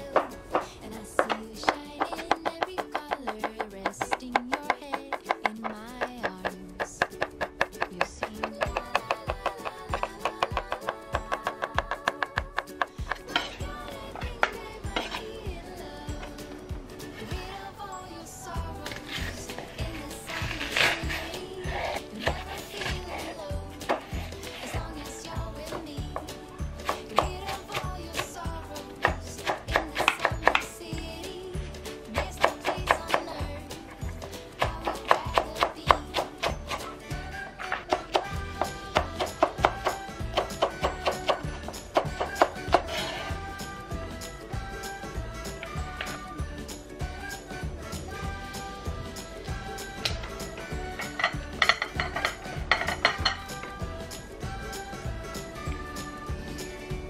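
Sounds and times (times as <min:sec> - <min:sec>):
background music: 0:00.0 - 0:57.0
dishware clinking and knocking: 0:51.0 - 0:53.5.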